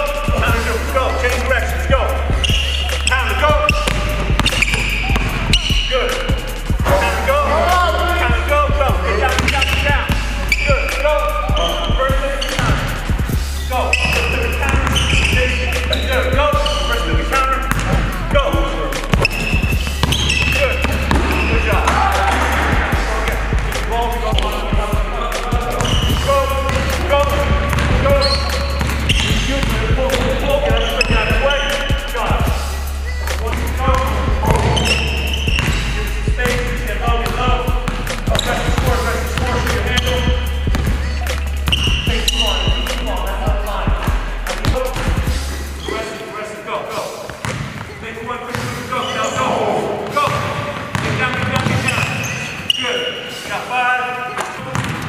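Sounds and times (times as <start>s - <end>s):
music with vocals and bass: 0.0s - 46.0s
basketball bouncing on wooden floor: 3.6s - 5.8s, 17.7s - 18.1s, 19.1s - 23.4s, 25.8s - 26.9s, 27.6s - 30.4s, 34.0s - 40.0s, 40.7s - 41.0s, 47.4s - 48.7s, 50.3s - 52.2s, 54.7s - 55.0s.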